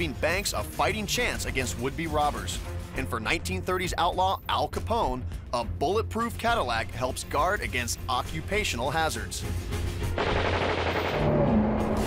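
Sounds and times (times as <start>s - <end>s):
machine gun firing: 10.1s - 11.5s.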